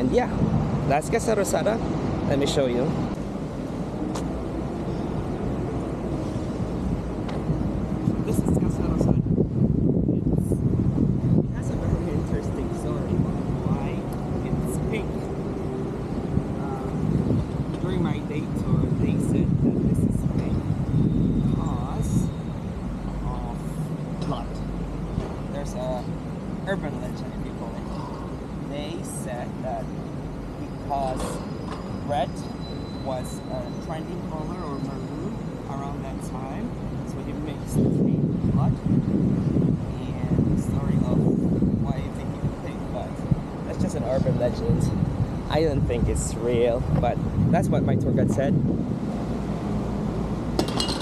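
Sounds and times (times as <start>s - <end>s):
traffic rumble: 0.0s - 51.0s.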